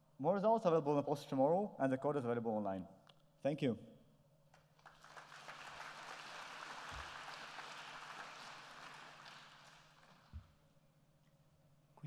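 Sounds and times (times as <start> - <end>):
faint audience applause: 4.8 - 10.4.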